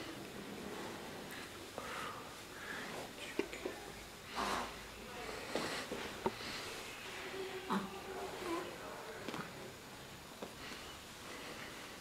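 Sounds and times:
soft whispering voice: 2.2 - 9.8.

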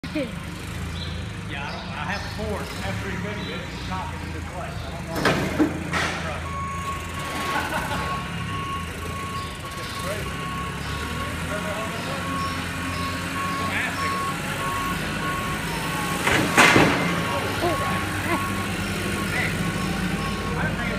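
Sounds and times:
forklift engine running: 0.0 - 20.9
reversing alarm beeping: 6.2 - 20.9
loud clunk: 16.2 - 17.3.

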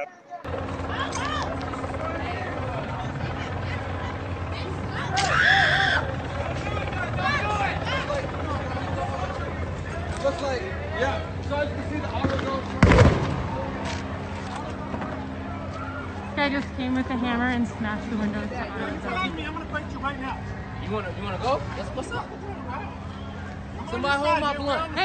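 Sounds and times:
faint voices: 0.0 - 25.0
low mechanical drone: 0.5 - 25.0
loud bang: 12.2 - 13.7.

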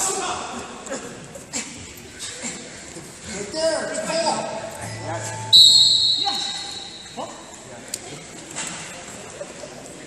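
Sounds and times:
referee's whistle blown: 5.4 - 7.2.

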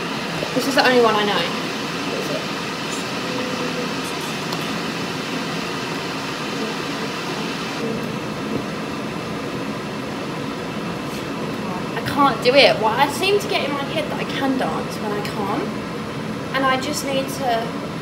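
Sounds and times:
kettle heating water: 0.0 - 18.0.

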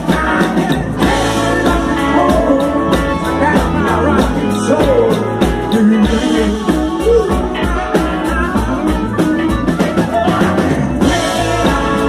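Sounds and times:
drum kit beat: 0.0 - 12.0
electric guitars: 0.0 - 12.0
live rock band playing: 0.0 - 12.0.

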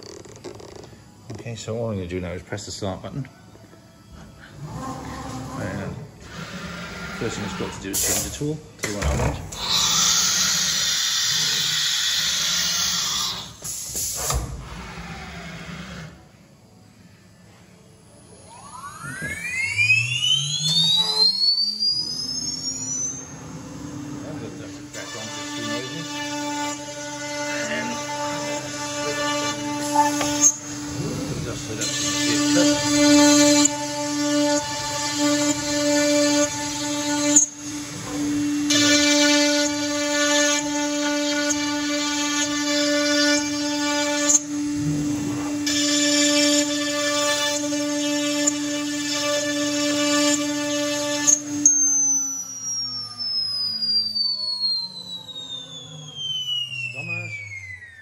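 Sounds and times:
router spindle whine: 0.0 - 58.0
router cutting wood: 5.6 - 13.6, 18.4 - 58.0
spindle spinning down: 18.2 - 58.0.

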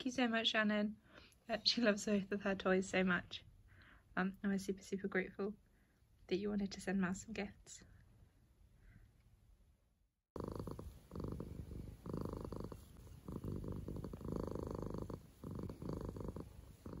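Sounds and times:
cat purring: 10.3 - 17.0.

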